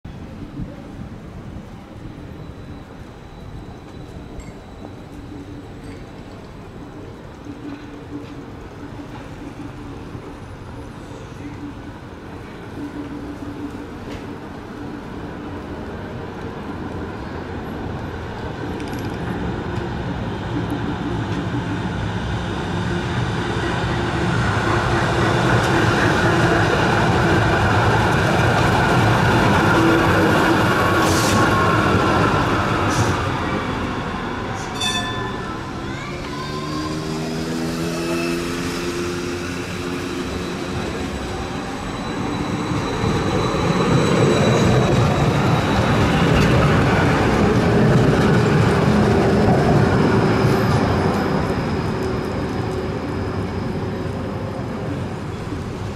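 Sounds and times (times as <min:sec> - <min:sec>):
trams running on street track: 0:00.0 - 0:55.9
tram motor whine: 0:01.2 - 0:55.9.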